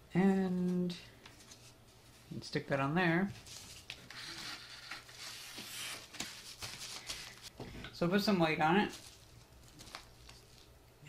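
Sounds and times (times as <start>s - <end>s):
paper envelope rustling: 3.4s - 7.5s, 8.8s - 10.8s.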